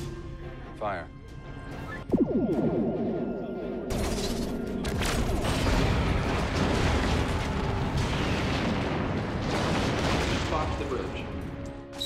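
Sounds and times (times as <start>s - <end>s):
booming explosions: 2.1s - 10.8s.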